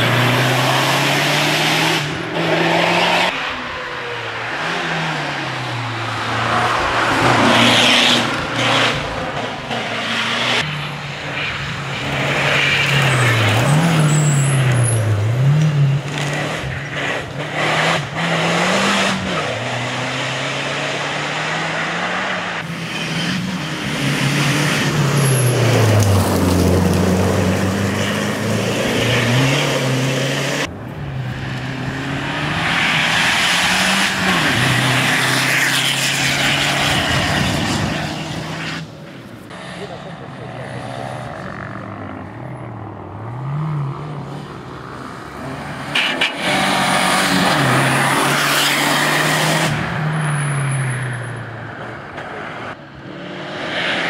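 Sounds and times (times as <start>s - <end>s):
rally car engine at full throttle: 0.0s - 54.0s.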